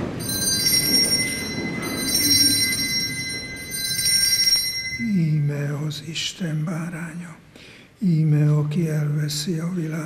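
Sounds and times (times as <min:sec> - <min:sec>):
altar bells ringing: 0:00.0 - 0:05.9.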